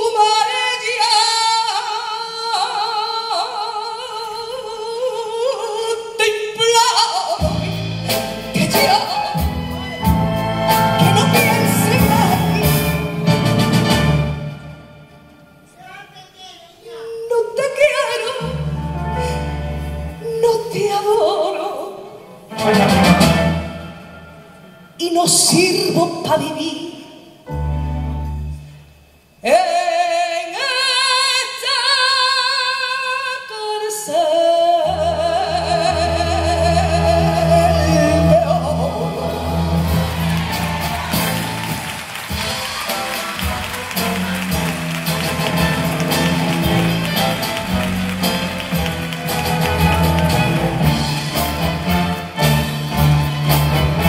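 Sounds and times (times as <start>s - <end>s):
orchestral music: 7.4s - 15.8s, 18.4s - 20.5s, 22.4s - 25.4s, 27.5s - 29.2s, 34.9s - 54.0s.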